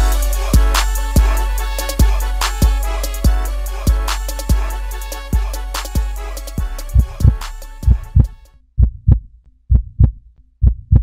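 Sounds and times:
heartbeat double thumps: 6.6 - 11.0.

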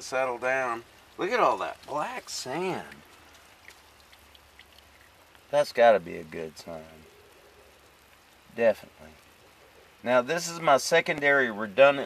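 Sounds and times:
water drips and small pops: 0.0 - 12.0.

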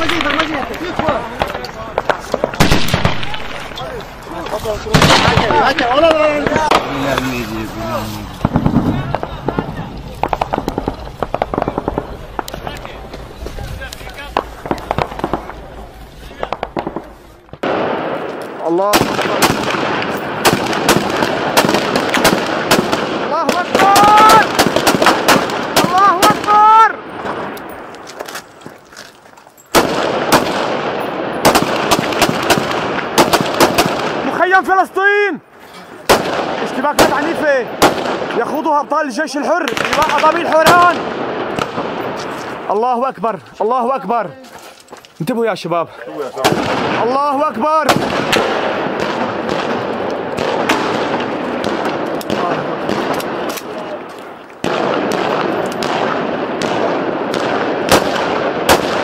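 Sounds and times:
rifle gunfire: 0.0 - 13.0, 14.2 - 15.6, 16.4 - 27.6, 29.7 - 34.4, 36.1 - 38.7, 39.6 - 42.4, 46.4 - 53.9, 54.6 - 59.0
men shouting: 23.4 - 24.6.

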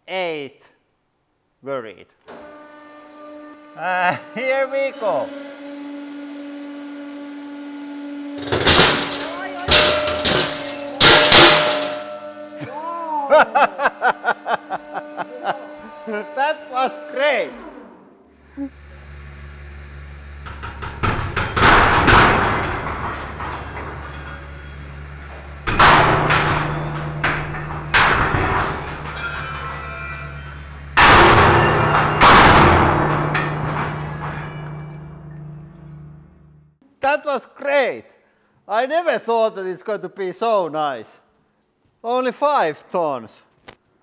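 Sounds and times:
hydraulic pump humming: 2.2 - 36.8
loud cracks with ringing metal: 5.9 - 12.7, 20.4 - 36.3.

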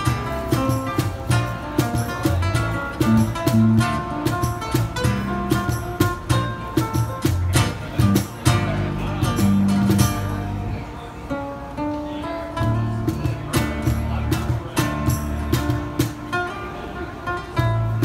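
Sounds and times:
sharp percussive strokes: 0.0 - 10.4
electric bass: 0.0 - 10.9, 12.6 - 16.2, 17.6 - 18.0
acoustic guitar: 0.0 - 18.0.

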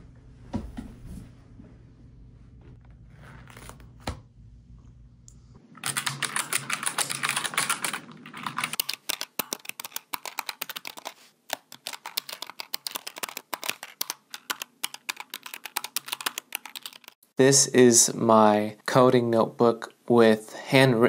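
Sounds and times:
typing on keyboard: 5.8 - 17.2.

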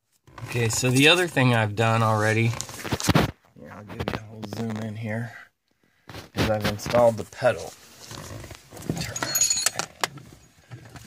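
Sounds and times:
rustling: 0.1 - 5.2
light metallic clinks: 9.0 - 9.9.

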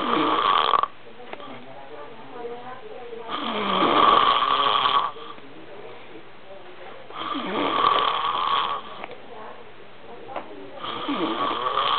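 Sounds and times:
man snoring loudly: 0.0 - 0.9, 3.3 - 5.2, 7.2 - 8.9, 10.8 - 11.9.

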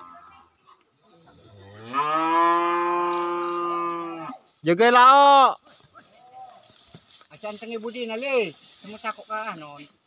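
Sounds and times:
bull mooing: 1.5 - 4.4.

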